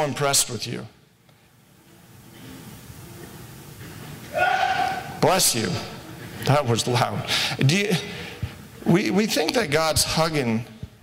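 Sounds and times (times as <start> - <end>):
person sneezing loudly: 4.3 - 5.2.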